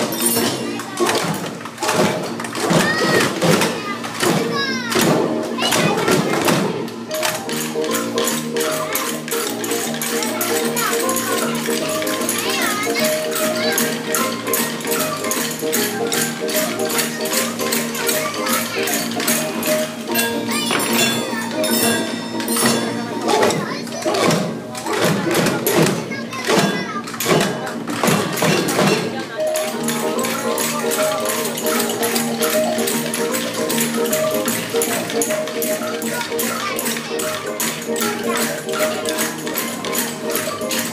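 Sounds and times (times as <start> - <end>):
children's voices: 0.0 - 40.9
hand drums and percussion: 0.0 - 40.9
backing tune: 6.6 - 24.9.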